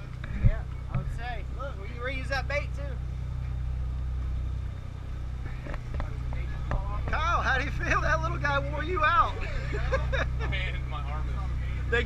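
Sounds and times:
boat engine drone: 0:00.0 - 0:12.0
people talking: 0:00.3 - 0:03.0, 0:05.9 - 0:12.0.

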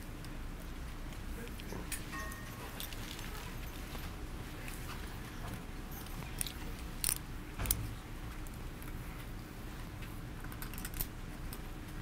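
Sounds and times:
poker chips clicking: 0:10.4 - 0:11.1.

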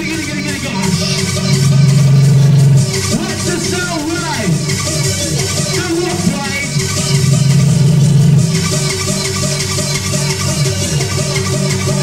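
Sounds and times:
electronic dance music: 0:00.0 - 0:12.0
held low bass note: 0:01.3 - 0:03.2, 0:07.0 - 0:09.1.

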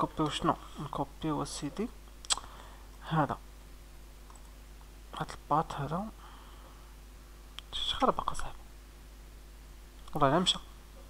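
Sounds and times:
steady low hum: 0:00.0 - 0:11.0
faint clicks: 0:04.2 - 0:04.9.

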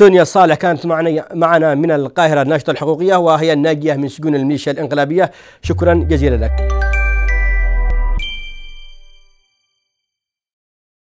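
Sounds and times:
deep bass tone: 0:05.6 - 0:09.1
bright chime ding: 0:05.6 - 0:09.4.

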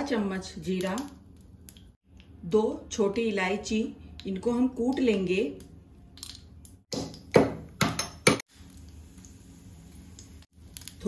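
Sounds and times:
seeds sizzling in hot oil: 0:08.5 - 0:11.0.

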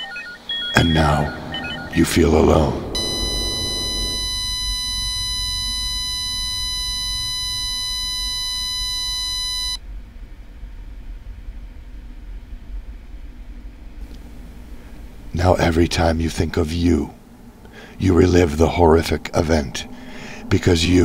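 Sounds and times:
high-pitched electronic beep: 0:00.0 - 0:09.3
low background hum: 0:00.0 - 0:21.0.

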